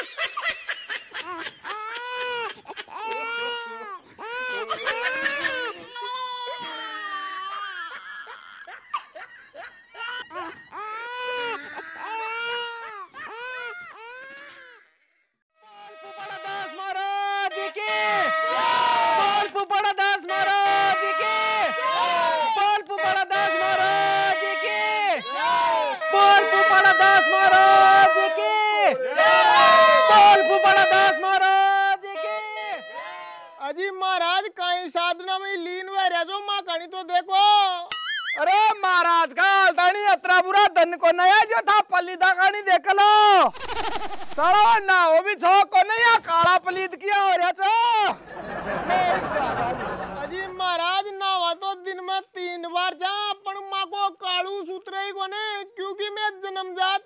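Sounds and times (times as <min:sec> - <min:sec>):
high-pitched crying wails: 0:00.0 - 0:19.5, 0:20.1 - 0:33.6, 0:43.5 - 0:44.8
person yelling: 0:15.7 - 0:33.7, 0:44.3 - 0:46.5.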